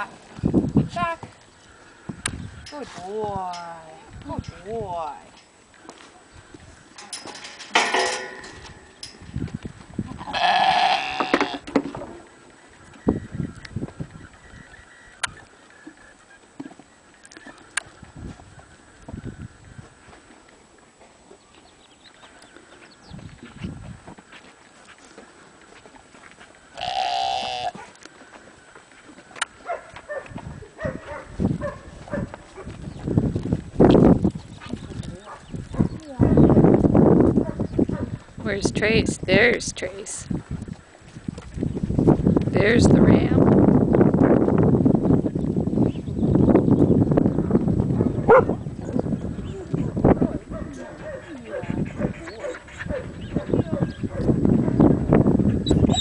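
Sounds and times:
knocks and rustles: 7.0 - 9.9
sheep bleating: 10.2 - 11.7, 26.8 - 27.8.

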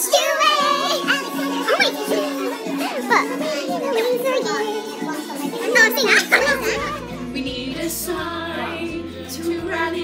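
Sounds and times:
background music: 0.0 - 10.0
young women laughing and talking: 0.9 - 7.4.

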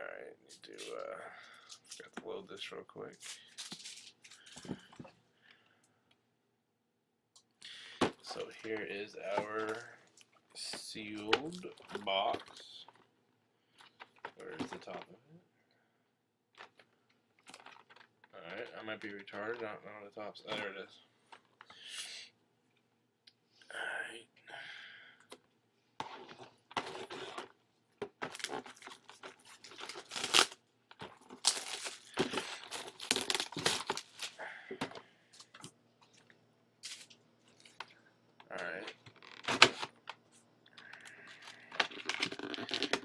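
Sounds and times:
plastic wrap tearing and crinkling: 3.2 - 4.6, 26.1 - 34.4, 41.2 - 43.0.

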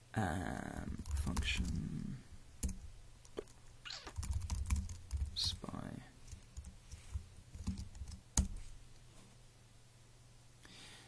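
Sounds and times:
computer keyboard typing: 0.9 - 1.9, 2.6 - 5.7, 6.3 - 8.6.

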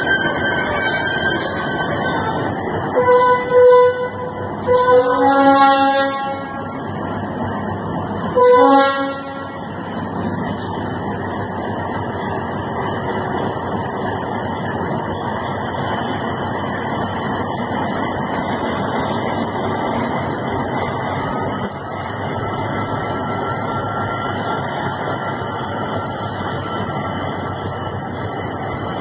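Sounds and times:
diesel locomotive engine running: 0.0 - 29.0
locomotive horn blast: 3.0 - 6.8, 8.3 - 9.7.

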